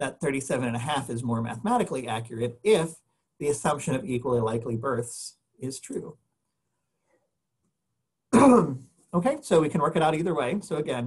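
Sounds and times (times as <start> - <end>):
man clearing his throat: 8.3 - 8.8.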